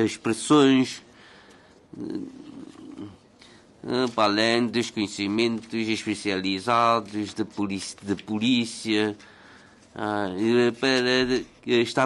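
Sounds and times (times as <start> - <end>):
man speaking: 0.0 - 1.1, 1.9 - 9.2, 9.9 - 12.0.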